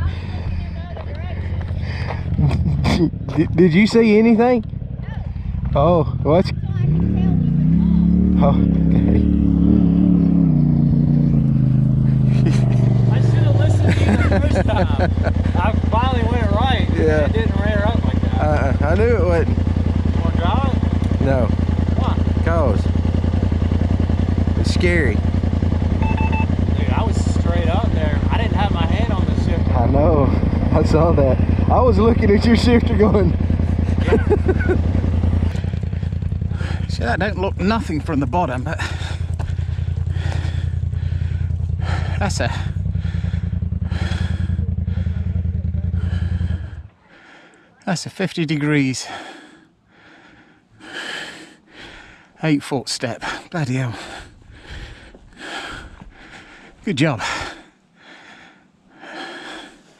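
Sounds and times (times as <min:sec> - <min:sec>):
people talking: 0:00.0 - 0:09.3, 0:12.3 - 0:19.5, 0:20.1 - 0:22.9, 0:24.5 - 0:25.2, 0:26.7 - 0:33.4, 0:34.0 - 0:34.8, 0:36.6 - 0:39.0, 0:41.9 - 0:42.8, 0:47.8 - 0:49.3, 0:52.4 - 0:54.2, 0:56.9 - 0:57.6
engine idling: 0:00.0 - 0:59.9.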